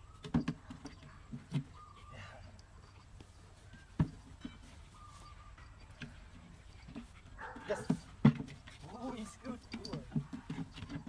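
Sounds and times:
puppy whining: 0:00.0 - 0:03.0
puppy sniffing: 0:06.8 - 0:09.7.

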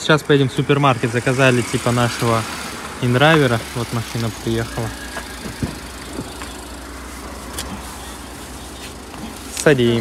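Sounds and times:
car engine idling: 0:00.0 - 0:10.0
street traffic: 0:00.0 - 0:10.0.

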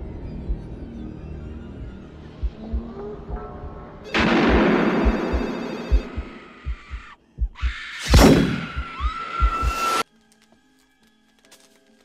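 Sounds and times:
heartbeat thumps: 0:00.4 - 0:00.8, 0:01.8 - 0:09.9.

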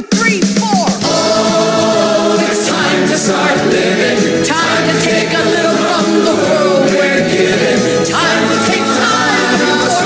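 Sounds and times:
show-tune accompaniment: 0:00.1 - 0:10.0
many voices singing chorus: 0:01.0 - 0:10.0.

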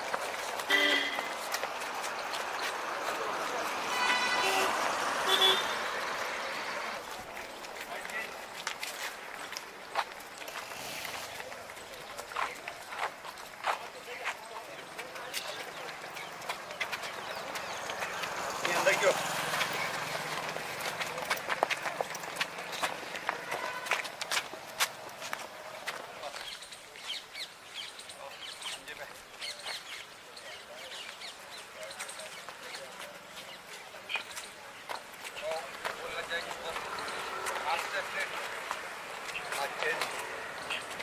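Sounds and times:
footsteps: 0:00.0 - 0:27.2, 0:31.1 - 0:41.0
street noise: 0:00.0 - 0:41.0
voices: 0:00.0 - 0:41.0
vehicle horn toot: 0:00.7 - 0:01.4, 0:03.8 - 0:06.0, 0:23.3 - 0:24.1.

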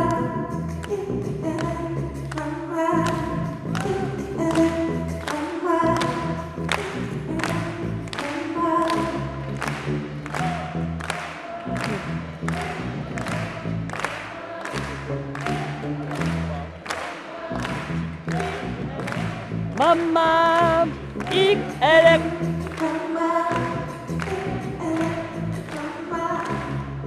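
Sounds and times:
guitar: 0:00.0 - 0:14.1, 0:14.7 - 0:27.0
bass notes: 0:00.0 - 0:27.0
people singing: 0:14.1 - 0:16.1, 0:16.9 - 0:19.1, 0:19.8 - 0:26.8
percussion beat: 0:15.4 - 0:26.7.

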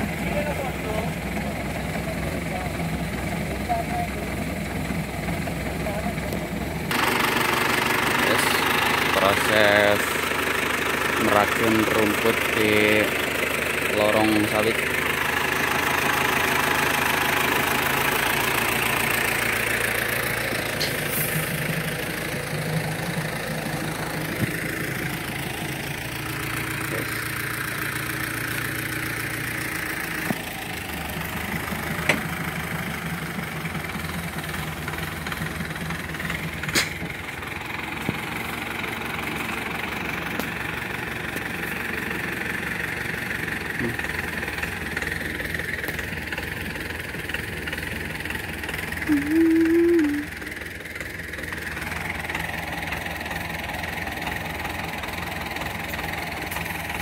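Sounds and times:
tractor engine running: 0:00.0 - 0:57.0.

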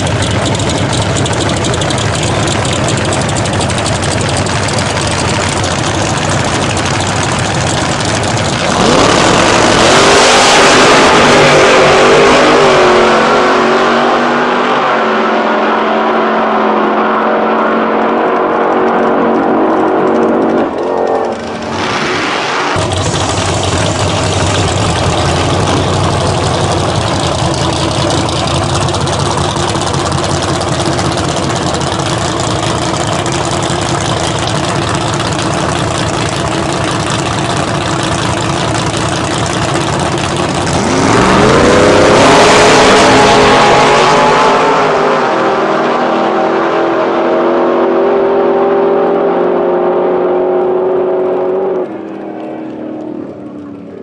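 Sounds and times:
drag car engines idling: 0:00.0 - 0:10.0, 0:18.0 - 0:42.3, 0:51.5 - 0:54.0
drag cars launching at full throttle: 0:00.0 - 0:54.0.

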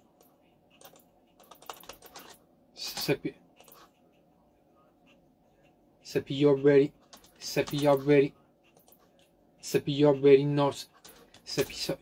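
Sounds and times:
computer keys clicking: 0:00.0 - 0:03.9, 0:07.0 - 0:09.3.

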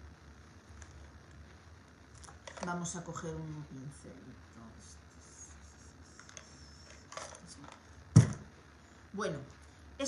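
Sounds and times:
paintbrushes clicking and rattling: 0:02.2 - 0:02.8, 0:06.2 - 0:07.8.

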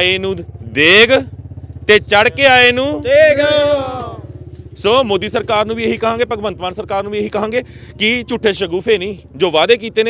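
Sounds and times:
man talking: 0:00.0 - 0:04.2, 0:04.8 - 0:10.0
engine idling with pulsing hum: 0:00.0 - 0:10.0.

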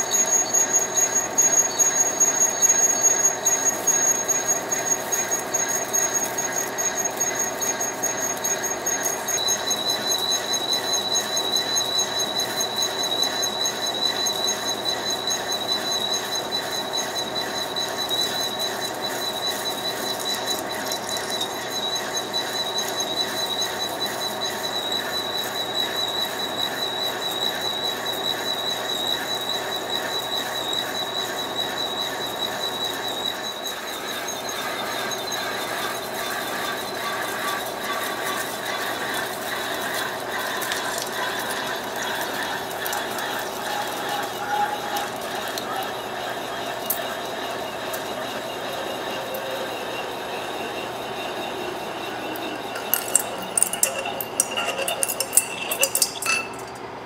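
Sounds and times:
lathe running: 0:00.0 - 0:29.0, 0:30.9 - 0:57.0
metal lathe whine: 0:00.0 - 0:57.0.

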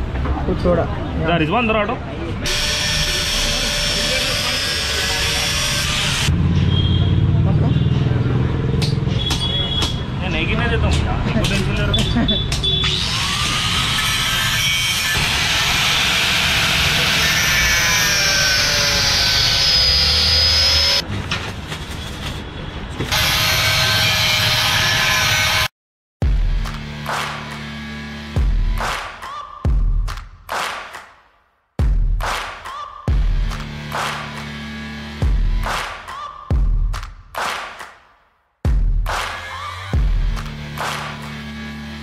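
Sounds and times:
angle grinder cutting metal: 0:02.4 - 0:06.3, 0:12.7 - 0:21.0, 0:23.1 - 0:25.7.

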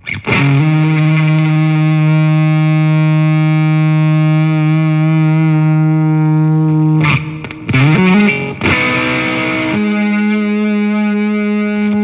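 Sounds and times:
fuzzed electric guitar note: 0:00.0 - 0:12.0.

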